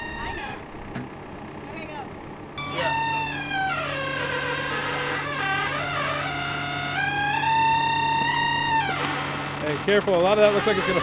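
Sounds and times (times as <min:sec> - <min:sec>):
theremin-like sliding tone: 0:00.0 - 0:00.7, 0:02.6 - 0:04.9
backhoe engine running: 0:00.0 - 0:11.0.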